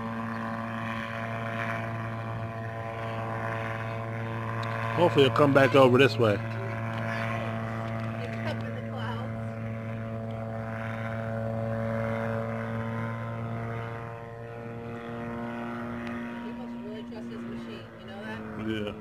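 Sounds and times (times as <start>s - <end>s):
gyrocopter engine droning overhead: 0.0s - 19.0s.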